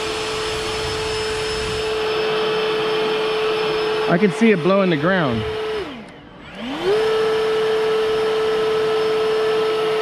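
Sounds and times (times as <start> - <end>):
electric blower fan whine: 0.0 - 10.0.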